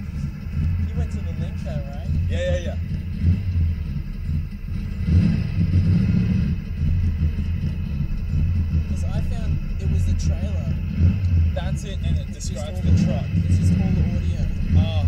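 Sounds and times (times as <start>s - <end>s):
car engine rumbling: 0.0s - 15.0s.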